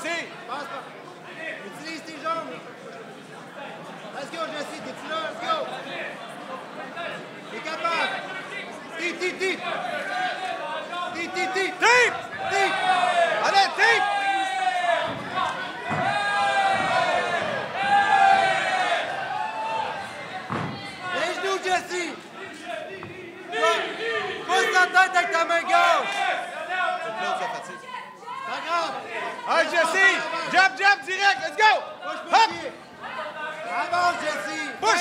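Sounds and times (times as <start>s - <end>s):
spectators shouting: 7.6s - 35.0s.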